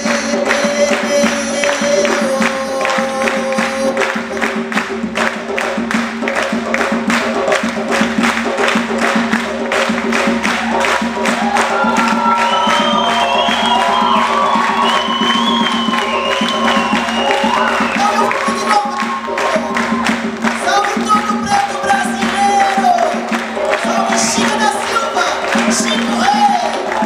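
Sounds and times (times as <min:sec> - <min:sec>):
high voice singing: 0:00.0 - 0:04.7
hand drum and drum kit beat: 0:00.0 - 0:27.0
live band music: 0:00.0 - 0:27.0.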